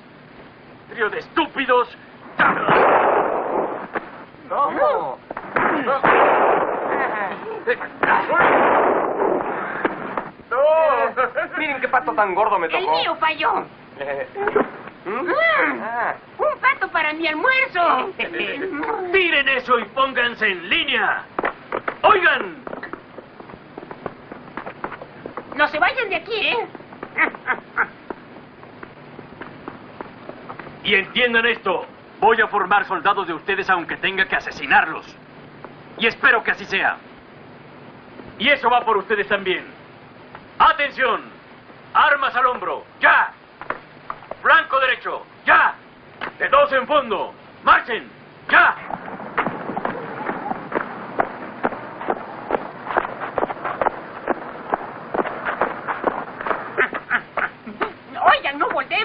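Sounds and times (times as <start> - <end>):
steady background hiss: 0.0 - 59.0
boots marching on dirt: 21.3 - 30.8, 48.9 - 58.0
duck quacking: 56.7 - 57.7.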